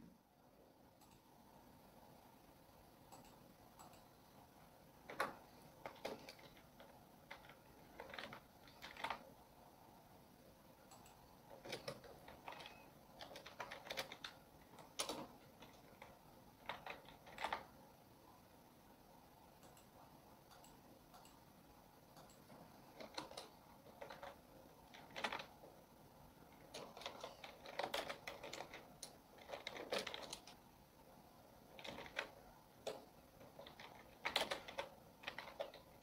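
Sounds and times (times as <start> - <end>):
computer keyboard typing: 3.1 - 9.5, 10.7 - 17.9, 19.6 - 21.4, 22.0 - 30.6, 31.6 - 36.0.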